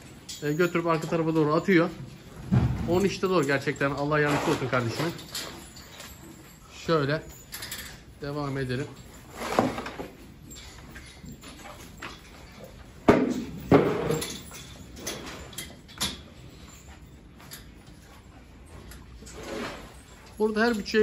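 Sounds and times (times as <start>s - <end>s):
cattle barn background: 0.0s - 21.0s.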